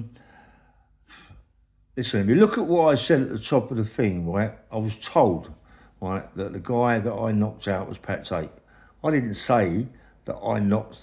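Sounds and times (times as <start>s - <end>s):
man breathing: 0.1s - 1.6s, 5.6s - 6.0s, 8.6s - 9.0s, 9.9s - 10.3s.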